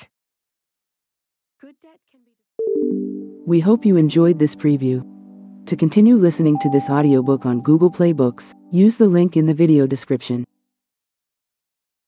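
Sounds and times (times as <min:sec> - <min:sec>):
electronic audio logo chime: 0:06.4 - 0:08.7.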